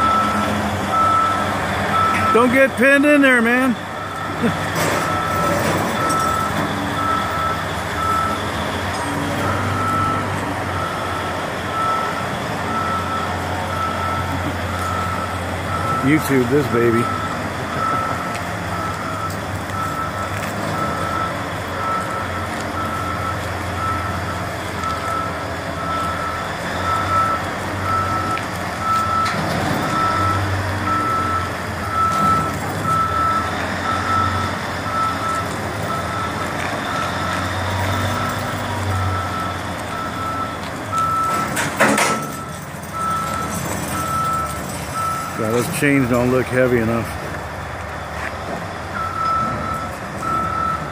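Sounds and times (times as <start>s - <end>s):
backup alarm beeping: 0.0s - 4.5s, 5.1s - 8.5s, 9.5s - 41.5s, 49.0s - 50.9s
diesel engine running: 0.0s - 50.9s.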